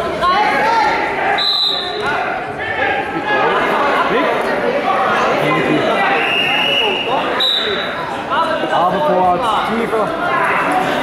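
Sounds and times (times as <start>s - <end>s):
spectator chatter: 0.0s - 11.0s
referee's whistle: 1.4s - 2.1s, 6.1s - 7.9s.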